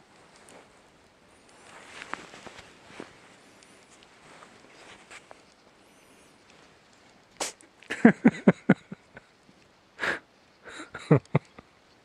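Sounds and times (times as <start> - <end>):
cat sneezing: 7.4 - 7.6.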